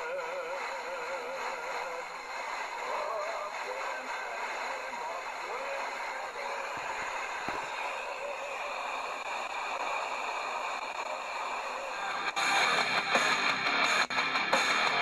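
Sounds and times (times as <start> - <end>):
radio crackles: 0.0 - 13.4
faint song on radio: 0.0 - 15.0
loud music on radio: 0.0 - 15.0
radio hiss: 0.0 - 15.0.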